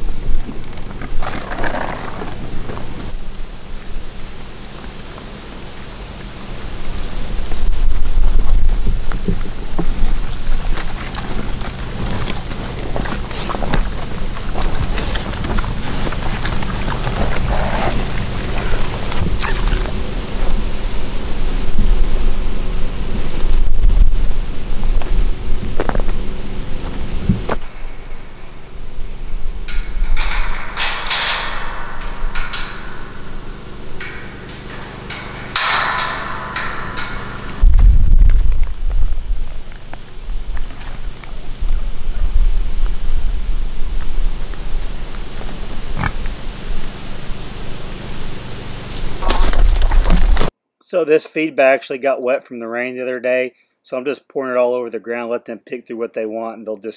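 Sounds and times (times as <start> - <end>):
wind rumble on microphone: 0.0 - 50.5.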